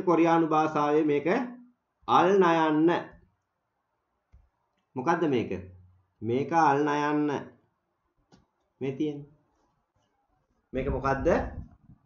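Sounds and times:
man talking: 0.0 - 3.2, 4.9 - 7.6, 8.8 - 9.4, 10.8 - 11.7.

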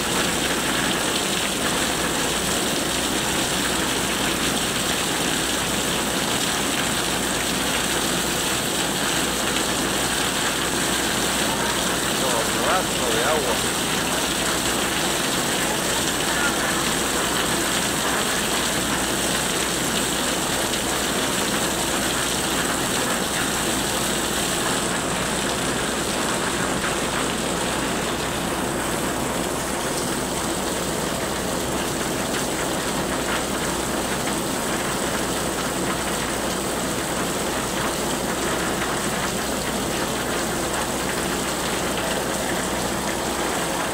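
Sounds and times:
heavy rain on street and awning: 0.0 - 43.9
water pouring off awning: 0.0 - 43.9.

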